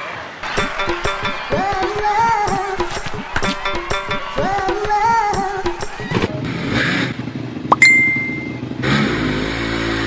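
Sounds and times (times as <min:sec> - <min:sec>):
short high ding: 0:07.7 - 0:08.8
motorcycle engine revving: 0:08.8 - 0:10.0.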